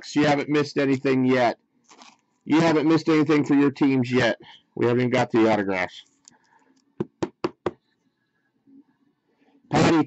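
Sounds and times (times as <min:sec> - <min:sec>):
plastic card holder knocking on table: 0:07.0 - 0:07.8.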